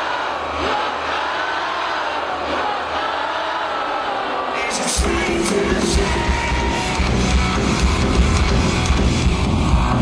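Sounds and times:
drums: 4.8s - 10.0s
distorted electric guitars: 4.9s - 10.0s
bass guitar: 5.0s - 10.0s.

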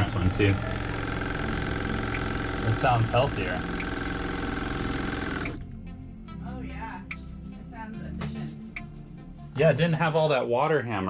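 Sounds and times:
diaphragm pump buzzing: 0.0s - 5.7s.

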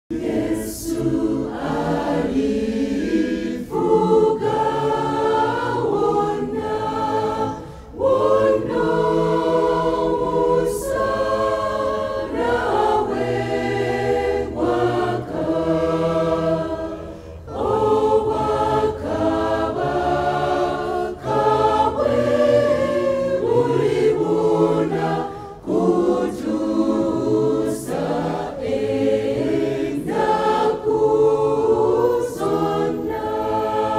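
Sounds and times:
church choir singing gospel: 0.1s - 33.9s.

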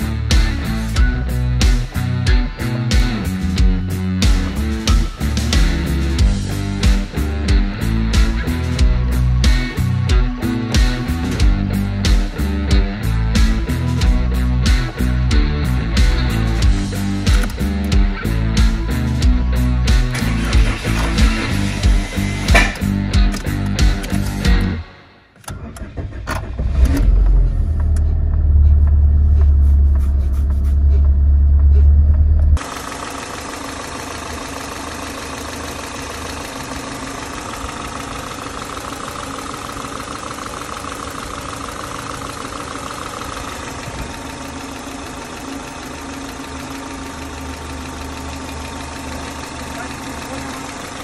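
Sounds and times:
car engine idling: 0.0s - 51.0s
car engine starting: 0.0s - 51.0s.

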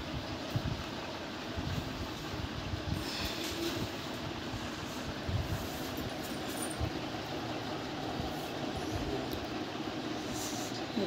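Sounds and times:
fan-like hum with hiss: 0.0s - 11.0s.

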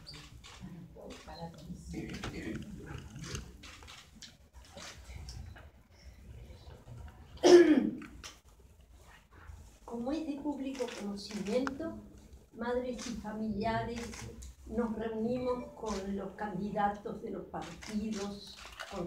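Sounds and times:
murmur of people talking: 0.0s - 8.4s, 9.0s - 19.0s.

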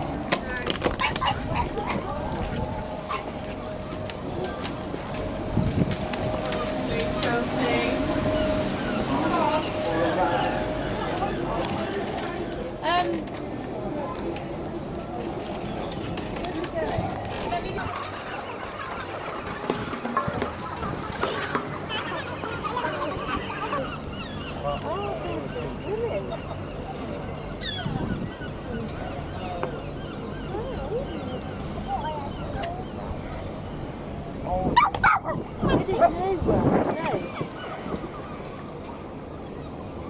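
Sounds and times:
outdoor background noise: 0.0s - 40.0s
people talking indistinctly: 0.3s - 38.4s.

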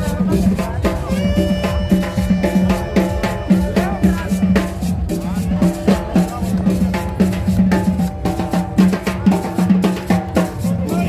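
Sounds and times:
street band playing dance tune: 0.0s - 11.0s.

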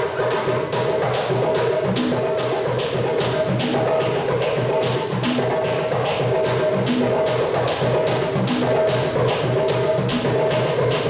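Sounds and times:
conga hand-drum music: 0.0s - 11.0s.

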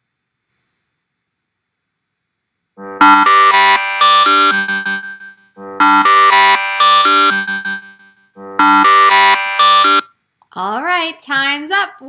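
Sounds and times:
timer alarm tune: 2.8s - 10.1s.

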